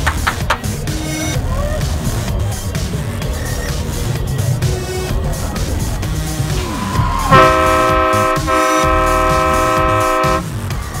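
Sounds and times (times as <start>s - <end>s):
air horn blasts: 7.2s - 10.6s.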